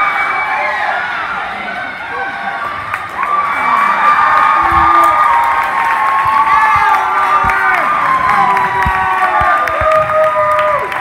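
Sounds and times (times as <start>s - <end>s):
spectators cheering and shouting: 0.0s - 11.0s.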